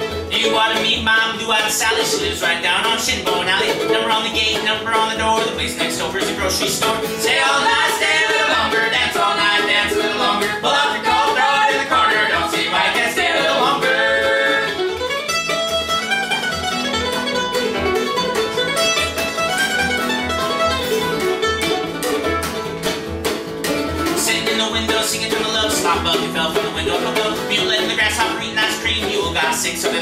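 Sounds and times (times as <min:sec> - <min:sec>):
acoustic guitar rhythm: 0:00.0 - 0:30.0
mandolin playing: 0:00.0 - 0:30.0
upright bass pulse: 0:04.5 - 0:15.1
sung harmony: 0:07.0 - 0:14.9.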